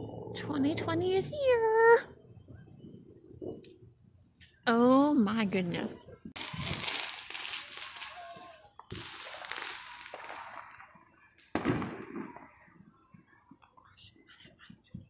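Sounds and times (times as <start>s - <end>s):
faint fireworks pops: 6.3s - 13.8s
fireworks bangs echoing: 6.4s - 12.9s.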